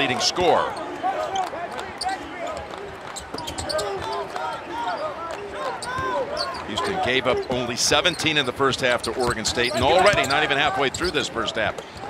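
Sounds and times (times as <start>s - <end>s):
sneakers squeaking on floor: 3.1s - 4.3s, 5.6s - 8.5s, 9.2s - 11.1s.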